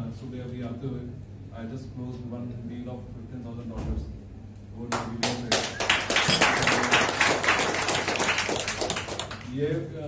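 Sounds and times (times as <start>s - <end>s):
audience applauding: 5.2s - 9.5s.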